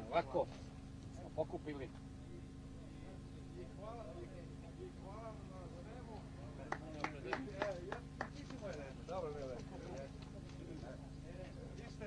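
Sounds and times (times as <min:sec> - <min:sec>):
low buzzing hum: 0:00.0 - 0:12.0
men talking in background: 0:00.0 - 0:12.0.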